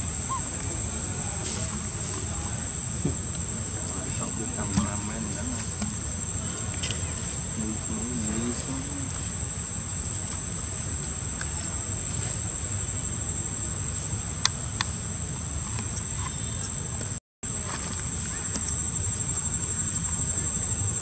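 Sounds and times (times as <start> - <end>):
high-pitched insect drone: 3.6 - 10.2.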